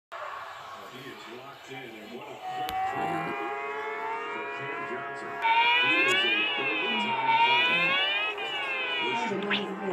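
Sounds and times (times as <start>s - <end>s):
siren-like wailing tone: 2.3s - 9.9s.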